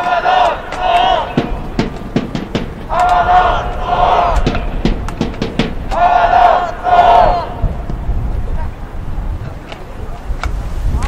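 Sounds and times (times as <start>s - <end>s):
short sharp beats: 0.0s - 7.6s
crowd chanting in unison: 0.0s - 8.1s.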